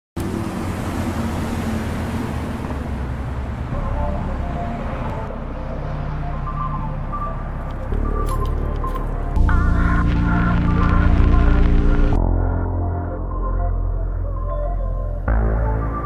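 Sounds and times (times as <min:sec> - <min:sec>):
bus and traffic passing: 0:00.2 - 0:11.6
synth-pop music: 0:03.6 - 0:16.0.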